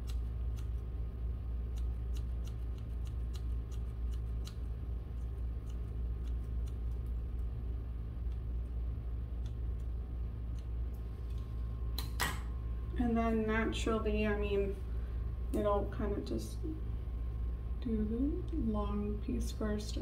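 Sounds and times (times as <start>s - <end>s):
scissors snipping hair: 0.0s - 0.8s, 1.7s - 7.2s
steady low hum: 0.0s - 20.0s.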